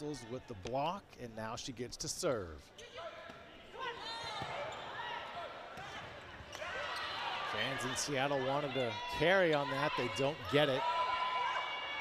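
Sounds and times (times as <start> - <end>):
shoes squeaking on court floor: 2.7 - 5.1
arena hubbub: 2.8 - 12.0.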